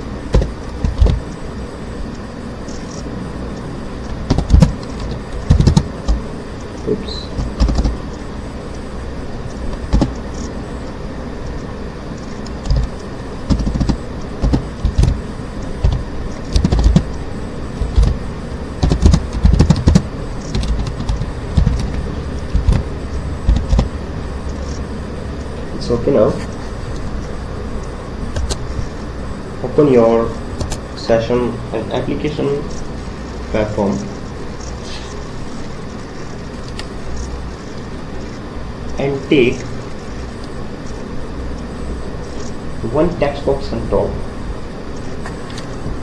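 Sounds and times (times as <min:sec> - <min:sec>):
background hiss: 0:00.0 - 0:46.0
steady low hum: 0:00.0 - 0:46.0
keyboard typing clicks: 0:00.3 - 0:01.3, 0:03.6 - 0:06.2, 0:06.8 - 0:08.0, 0:09.7 - 0:10.5, 0:12.2 - 0:15.2, 0:15.8 - 0:17.2, 0:17.8 - 0:18.2, 0:18.8 - 0:23.9, 0:28.4 - 0:28.6.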